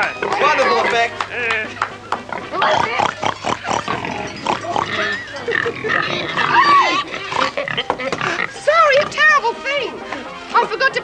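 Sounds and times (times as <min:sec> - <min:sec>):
person squealing: 0:04.5 - 0:07.6.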